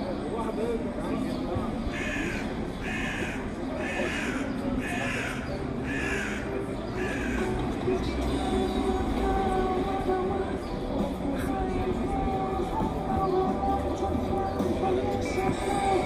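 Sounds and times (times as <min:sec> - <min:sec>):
bird calling harshly: 0:02.0 - 0:07.5.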